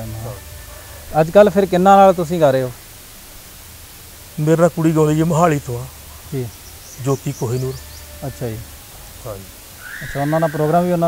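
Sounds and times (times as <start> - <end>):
man speaking: 0.0 - 0.5, 1.1 - 2.8, 4.4 - 11.0
steady background hiss: 0.0 - 11.0.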